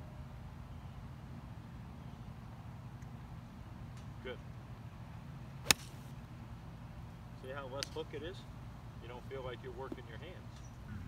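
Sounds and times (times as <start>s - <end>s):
golf club striking ball: 5.6s - 6.0s.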